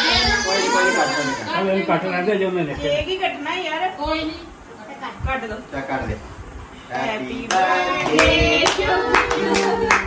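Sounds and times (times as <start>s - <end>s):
voices singing held notes: 6.9s - 10.0s
hands clapping: 7.5s - 10.0s.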